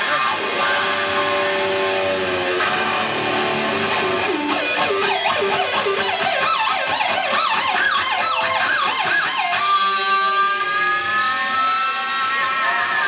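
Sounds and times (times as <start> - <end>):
electric guitar solo: 0.0 - 13.0.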